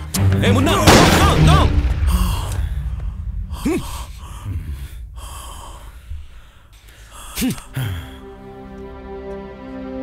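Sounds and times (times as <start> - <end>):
low rumble: 0.8 - 8.2
man gasping: 2.1 - 8.4.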